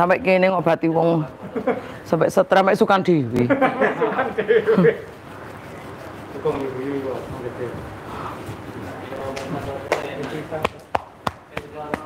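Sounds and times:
sharp slaps or knocks: 9.4 - 12.0.

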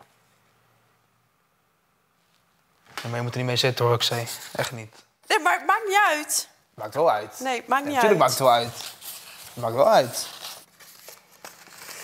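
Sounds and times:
paper cards crinkling: 8.0 - 12.0.

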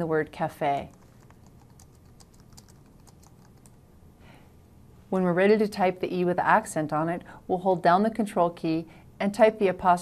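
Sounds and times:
keyboard typing: 0.8 - 3.8.

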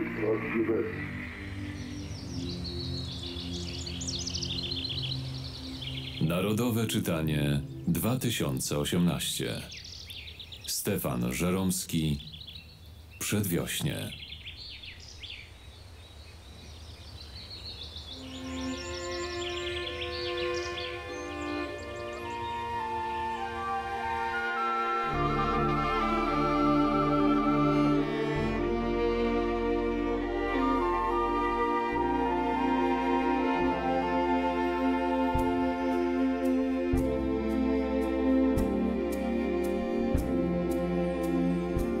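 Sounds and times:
birds chirping: 0.0 - 42.0
high bird-like chirps and trills: 1.0 - 7.9, 14.0 - 26.6
orchestral violins and flutes: 18.2 - 42.0.

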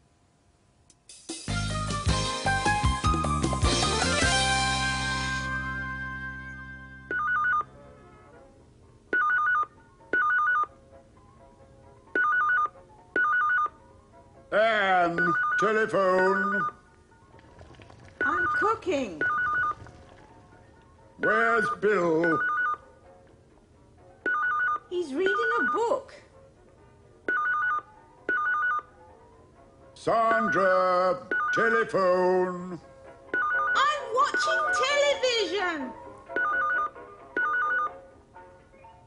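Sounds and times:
telephone ringing two-tone trill: 7.1 - 7.7, 9.2 - 10.7, 12.2 - 13.7, 18.2 - 19.8, 21.6 - 22.8, 24.3 - 25.9, 27.3 - 28.9, 33.4 - 34.8, 36.4 - 38.0
telephone ringing with warbling trill: 17.6 - 20.3.

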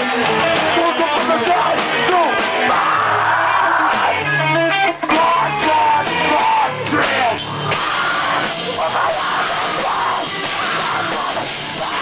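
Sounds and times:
bass guitar: 0.0 - 12.0
electric guitar: 0.0 - 12.0
live band playing loud: 0.0 - 12.0.

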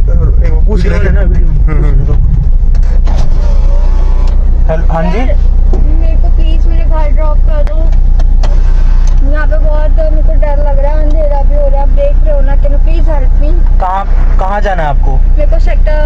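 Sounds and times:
car engine humming: 0.0 - 16.0
muffled voices: 0.0 - 16.0.

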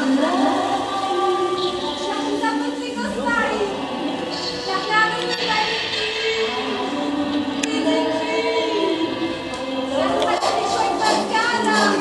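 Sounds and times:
choir singing long held notes: 0.0 - 12.0.

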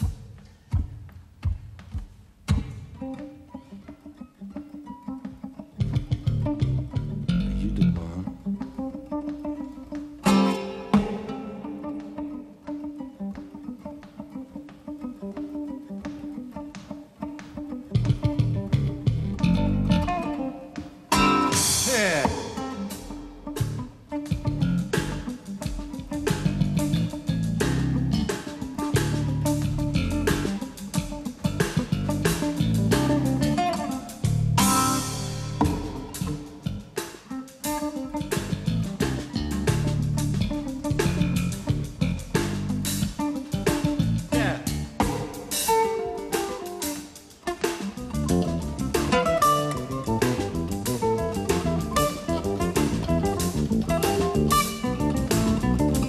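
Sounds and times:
electric bass guitar: 2.5 - 56.0
acoustic guitar picking: 3.1 - 26.7.

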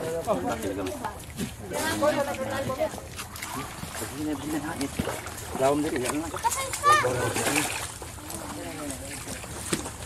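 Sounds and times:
water sloshing: 0.0 - 10.0.

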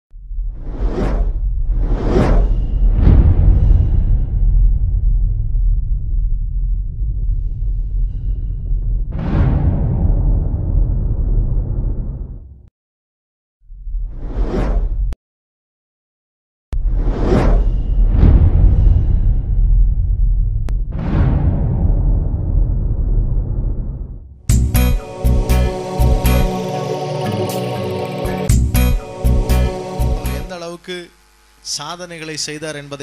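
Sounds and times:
deep rumble: 0.1 - 12.7, 16.8 - 26.5
noisy whoosh sweep: 24.5 - 30.6.

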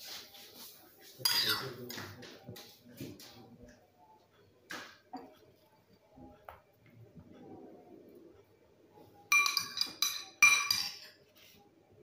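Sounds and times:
metal spoon scraping bowl: 1.2 - 1.8.

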